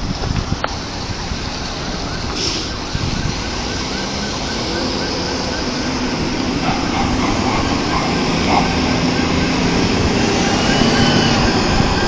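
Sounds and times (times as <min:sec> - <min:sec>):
bus engine humming: 0:00.0 - 0:12.0
cars driving past: 0:01.0 - 0:12.0
faint siren yelping: 0:01.7 - 0:12.0.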